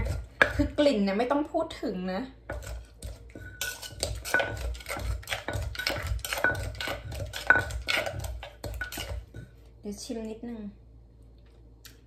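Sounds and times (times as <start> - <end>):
pestle knocking in clay mortar: 0.0 - 1.2, 2.4 - 9.5.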